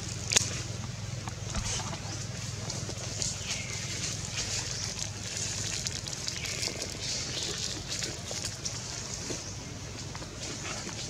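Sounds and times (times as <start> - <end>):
dry leaves rustling: 1.5 - 11.0.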